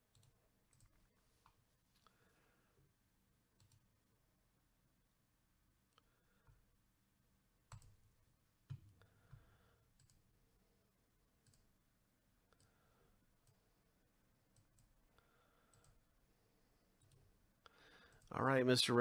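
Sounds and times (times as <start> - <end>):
computer mouse clicks: 0.1 - 2.1, 3.6 - 3.9, 7.7 - 10.3, 11.4 - 11.7, 14.5 - 15.0, 15.6 - 16.0.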